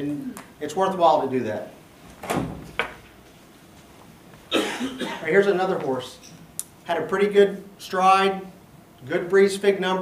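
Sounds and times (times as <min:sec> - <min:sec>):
person coughing: 0:04.5 - 0:05.3.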